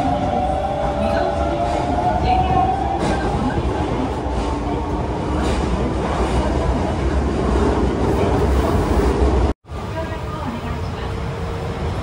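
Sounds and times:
train wheels rumbling: 0.0 - 12.0.

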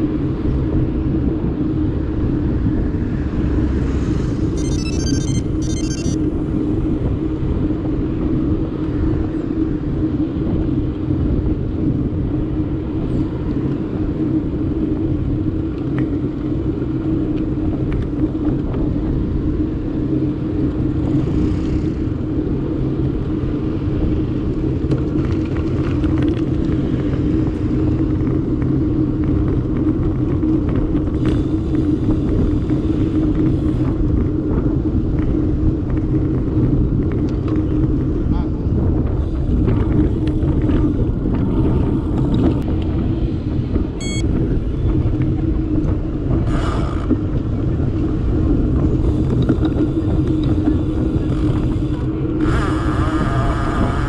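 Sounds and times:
bicycle tyres on tarmac: 0.0 - 54.0
passing motor traffic: 0.0 - 54.0
wind rumble: 0.0 - 54.0.

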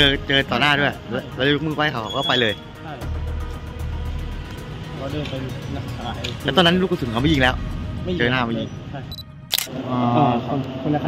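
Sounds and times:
camera focus beep: 9.1 - 9.7
camera shutter click: 9.5 - 9.7.

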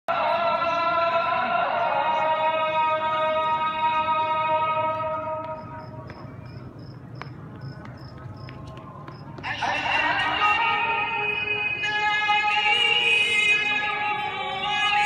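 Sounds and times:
call to prayer chanted: 0.1 - 6.8, 7.4 - 15.0.

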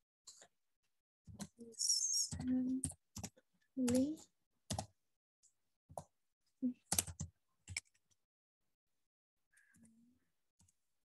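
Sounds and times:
keyboard keystrokes clicking: 6.9 - 8.1.

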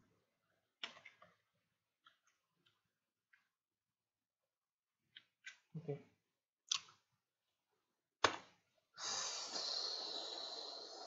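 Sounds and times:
keyboard and mouse clicks: 0.8 - 1.4.

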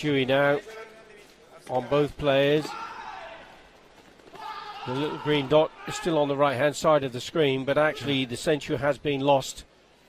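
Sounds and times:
man commentating: 0.0 - 3.6, 4.7 - 9.7
faint arena noise: 0.0 - 10.0.

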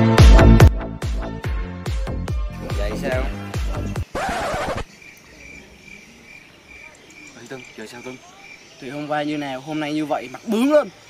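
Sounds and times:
insect chirping: 2.5 - 11.0.

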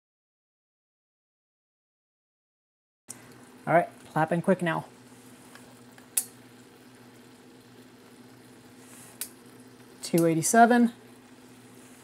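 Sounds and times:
syrup boiling in saucepan: 3.1 - 12.0.

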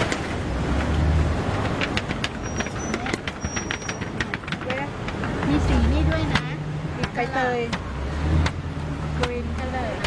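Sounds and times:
low traffic rumble: 0.0 - 10.0.

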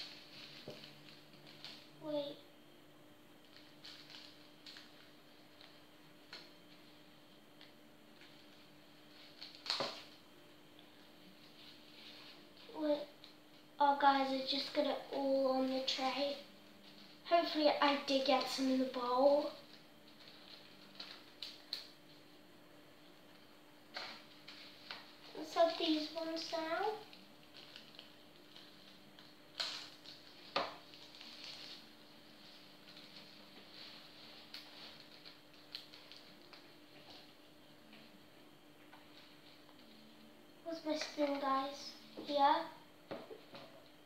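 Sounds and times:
plastic bag of foam beads rustling: 0.0 - 2.0, 24.2 - 37.4
plastic bag crackles: 0.0 - 2.2, 3.4 - 6.8, 8.2 - 10.2, 15.6 - 22.2, 23.9 - 38.0.

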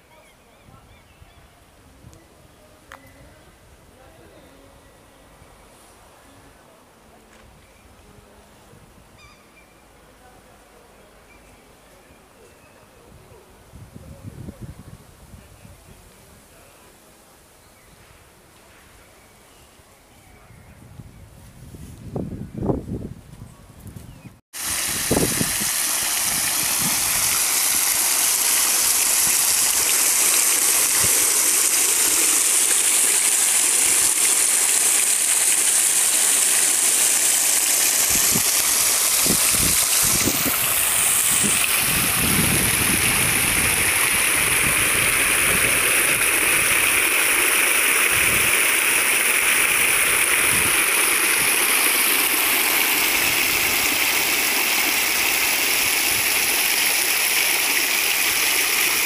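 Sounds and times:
fountain water splashing into basin: 24.6 - 59.0.

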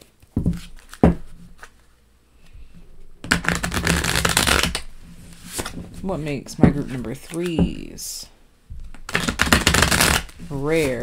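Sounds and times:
cards being riffle-shuffled: 0.2 - 1.9, 3.2 - 5.9, 6.8 - 7.7, 8.8 - 11.0.

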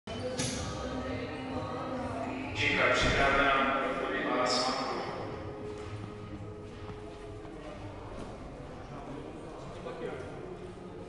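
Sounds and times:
crowd chatter in sports hall: 0.1 - 11.0.

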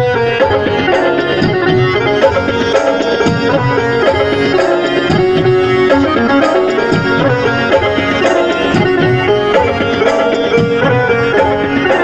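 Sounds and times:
dholak drum beating: 0.0 - 12.0
melody of long held notes: 0.0 - 12.0.

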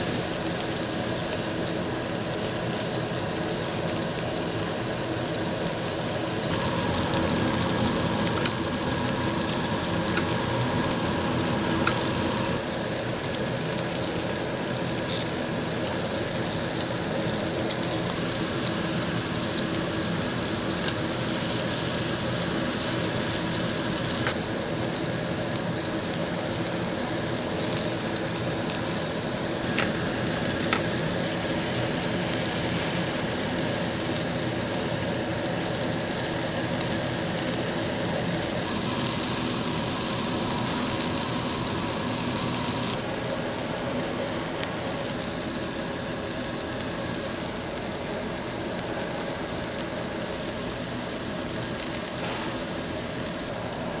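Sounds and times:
meat sizzling on grill plate: 0.0 - 54.0.

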